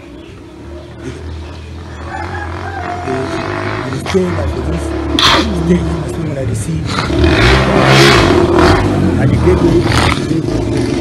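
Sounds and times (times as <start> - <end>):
vehicle passing by: 0.0 - 11.0
car engine revving: 0.6 - 11.0.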